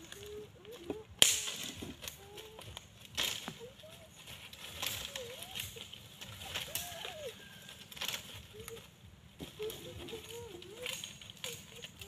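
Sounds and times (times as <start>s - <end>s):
dry leaves rustling: 0.0s - 12.0s
dry stick snapping: 0.0s - 12.0s.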